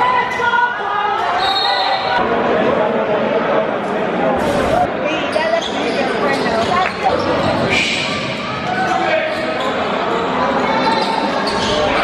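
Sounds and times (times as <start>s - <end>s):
spectators' voices and shouts: 0.0s - 12.0s
sneakers squeaking on hardwood: 8.8s - 12.0s.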